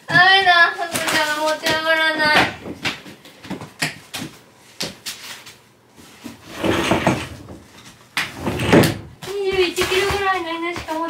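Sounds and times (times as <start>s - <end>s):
sliding door rasping on track: 6.4s - 7.6s, 8.3s - 9.0s.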